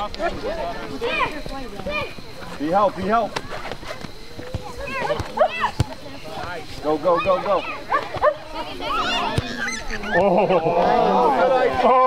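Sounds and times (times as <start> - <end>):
spectators calling out: 0.0 - 12.0.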